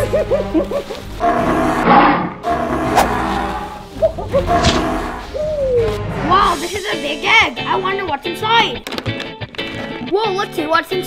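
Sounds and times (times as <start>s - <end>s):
wavering warble: 0.0s - 6.6s
background music: 0.0s - 11.0s
animal roar: 1.2s - 6.4s.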